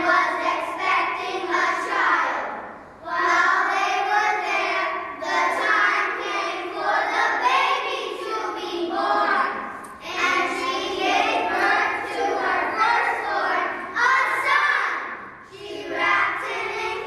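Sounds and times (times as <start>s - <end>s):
children's voices in unison: 0.0s - 17.0s.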